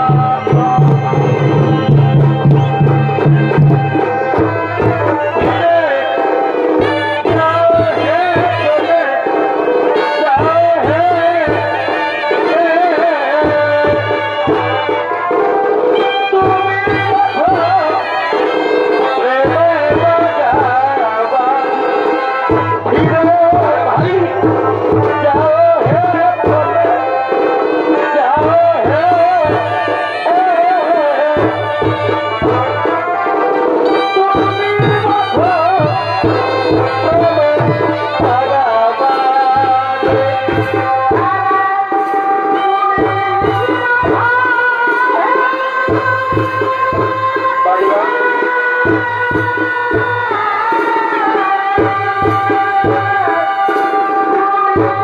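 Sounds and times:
drum strokes: 0:00.0 - 0:55.0
reed pipe melody: 0:00.0 - 0:55.0.

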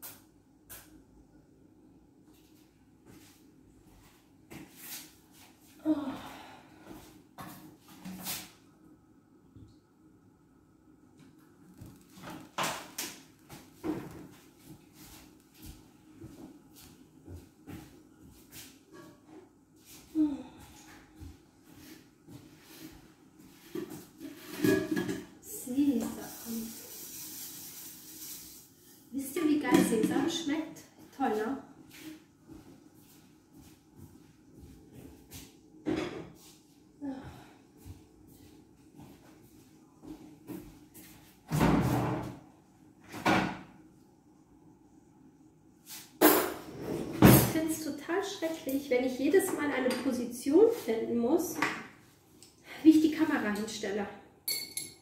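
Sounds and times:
hiss: 0:26.2 - 0:28.7.

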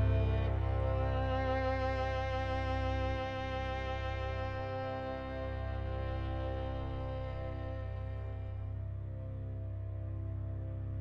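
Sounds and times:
bowed strings sustained chord: 0:00.0 - 0:11.0
low bass: 0:00.0 - 0:11.0.

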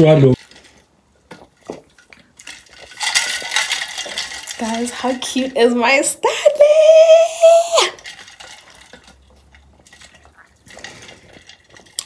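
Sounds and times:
metal tumbler clinking and rattling: 0:00.4 - 0:06.1, 0:07.8 - 0:12.0.

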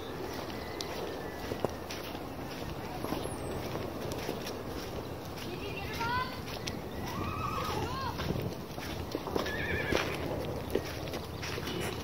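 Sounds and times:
horse whinnying: 0:07.1 - 0:07.9, 0:09.4 - 0:10.2.

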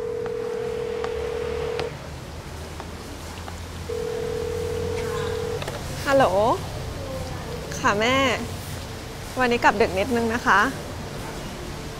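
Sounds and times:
telephone ringback tone: 0:00.0 - 0:01.9, 0:03.9 - 0:05.6
shoes clicking on tiled floor: 0:02.4 - 0:03.8.

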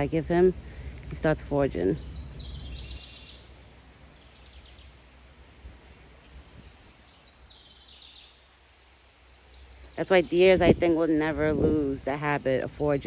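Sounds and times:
low outdoor rumble: 0:00.0 - 0:07.6, 0:08.2 - 0:13.0
songbird singing: 0:00.0 - 0:13.0.

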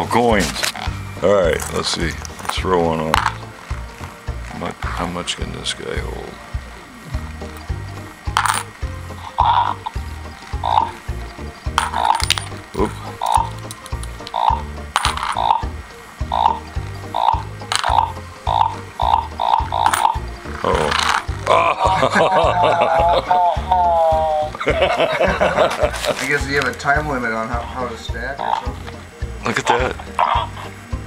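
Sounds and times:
toy robot electronic tune: 0:07.4 - 0:21.4
coins clinking on plastic tray: 0:08.3 - 0:08.7, 0:11.8 - 0:14.3, 0:15.0 - 0:15.6, 0:19.8 - 0:21.3.

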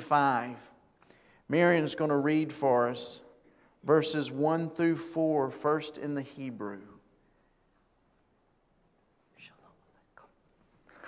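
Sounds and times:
faint whispering: 0:09.3 - 0:11.0.

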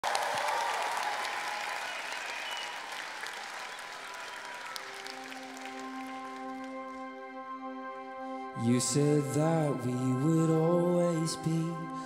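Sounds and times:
audience applauding: 0:00.0 - 0:07.2.

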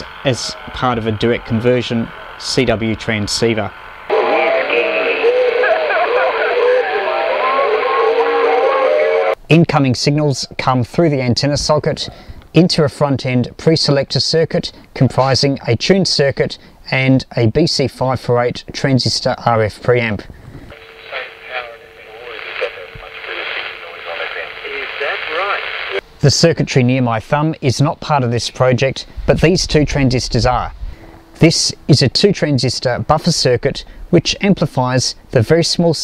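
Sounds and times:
garbled radio voice: 0:00.0 - 0:09.4, 0:20.8 - 0:26.0
steady heterodyne whistle: 0:04.1 - 0:09.4.

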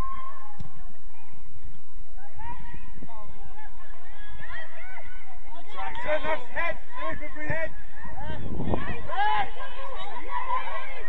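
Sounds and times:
distant players shouting: 0:02.2 - 0:11.0.

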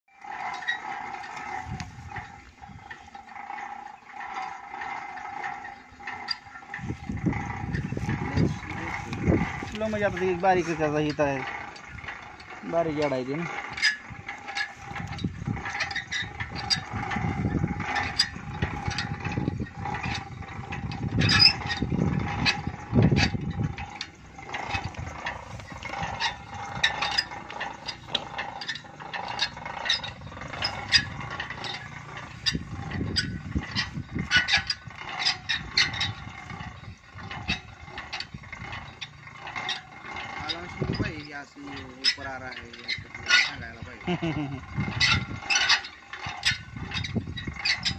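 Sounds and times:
winch gears and ratchet clicking: 0:00.1 - 0:47.9
low rumbling: 0:00.2 - 0:47.9.

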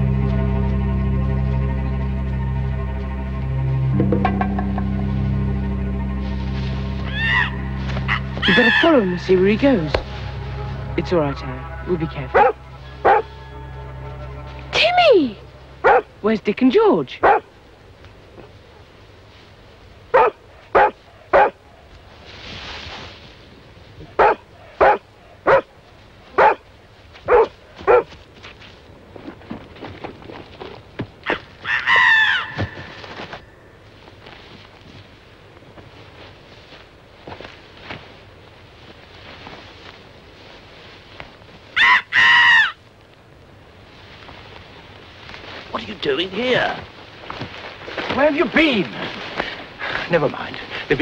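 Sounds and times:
wavering pitched calls: 0:00.0 - 0:16.2, 0:31.3 - 0:33.6, 0:41.7 - 0:42.8
dog barking: 0:12.4 - 0:13.3, 0:15.8 - 0:16.1, 0:17.2 - 0:17.5, 0:20.1 - 0:21.6, 0:24.2 - 0:25.7, 0:26.4 - 0:26.6, 0:27.3 - 0:28.1.

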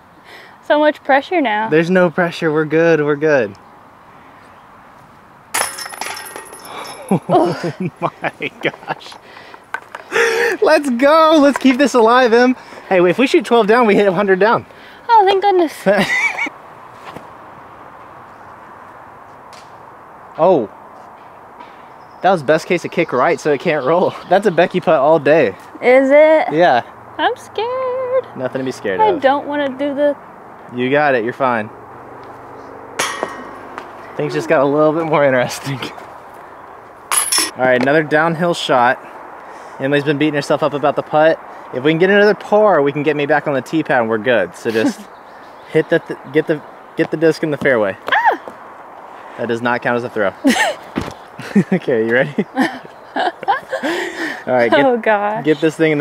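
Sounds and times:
quiet outdoor ambience: 0:00.0 - 0:56.0
disc hitting metal chains: 0:05.5 - 0:07.2, 0:33.0 - 0:33.7, 0:37.1 - 0:37.6
chains jingling: 0:05.6 - 0:07.6, 0:37.1 - 0:37.6
woman laughing: 0:07.0 - 0:09.2, 0:15.8 - 0:16.5, 0:44.7 - 0:45.1, 0:48.1 - 0:48.4, 0:50.4 - 0:51.7, 0:52.3 - 0:55.0.

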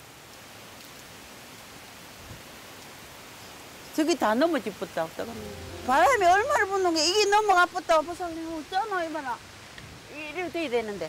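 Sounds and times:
rain falling in wind: 0:00.0 - 0:11.0.

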